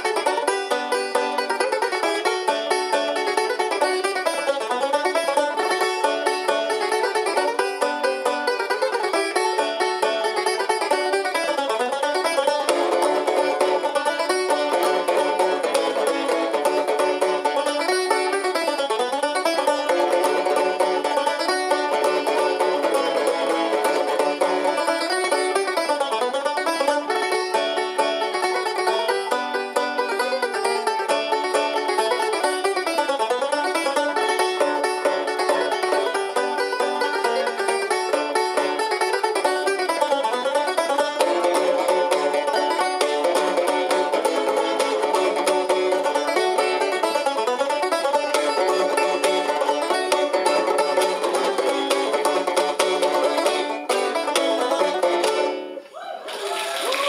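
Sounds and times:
banjos playing a tune: 0.0s - 55.9s.

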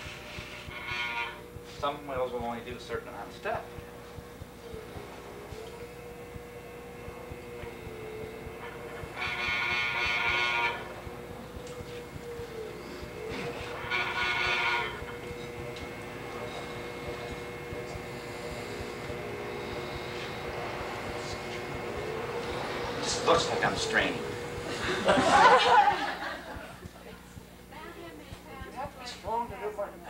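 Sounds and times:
loud horn-like tones: 0.0s - 1.6s, 4.5s - 25.8s
potter's wheel motor hum: 0.0s - 30.0s.

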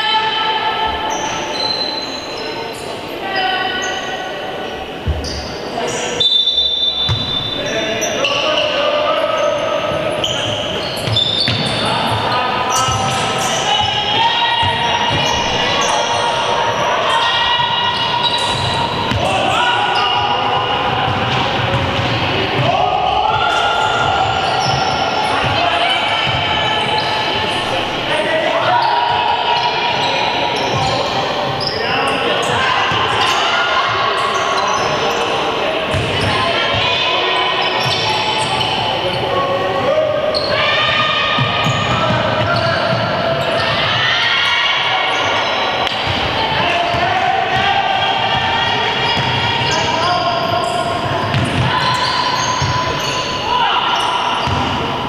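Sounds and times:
players calling out: 0.0s - 55.0s
shoes squeaking: 5.0s - 22.7s, 48.8s - 54.8s
basketball bouncing on wooden court: 7.1s - 7.5s, 11.0s - 12.3s, 18.2s - 19.3s, 20.9s - 22.7s, 35.9s - 36.8s, 51.1s - 52.8s, 54.4s - 54.8s.

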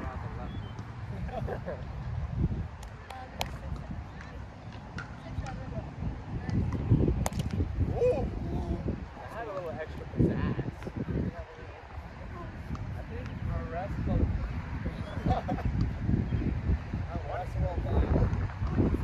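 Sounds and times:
ball smack: 6.5s - 7.6s.

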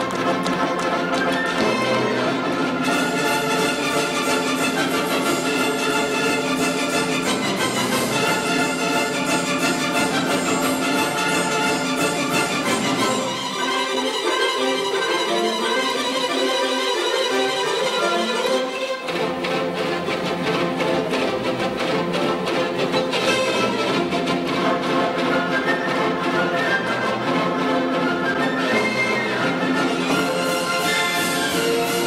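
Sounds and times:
orchestral music with violins: 0.0s - 32.0s.

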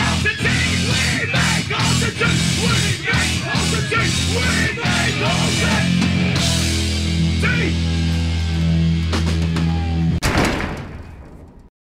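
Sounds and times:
loud band music: 0.0s - 10.2s
loud ringing crash: 10.2s - 11.7s.

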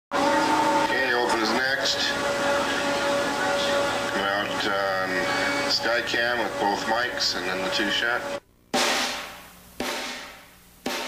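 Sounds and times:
steady hum: 0.1s - 11.0s
constant held tone: 0.2s - 8.7s
person talking: 4.1s - 8.4s.

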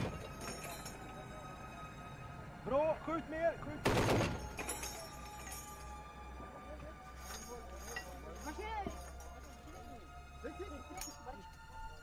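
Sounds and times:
held background music tones: 0.0s - 12.0s.

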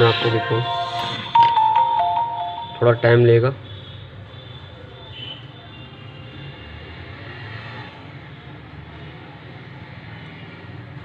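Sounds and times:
traffic noise with low hum: 0.0s - 11.0s.

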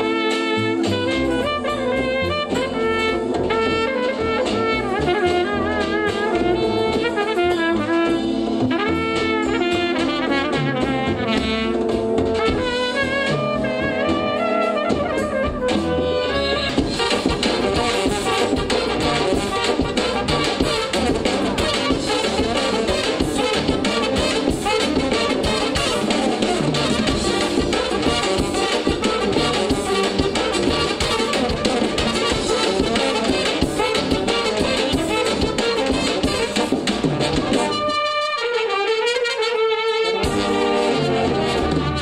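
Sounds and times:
tenor horns and tuba notes: 0.0s - 42.0s
trumpets playing fast melody: 0.0s - 42.0s.

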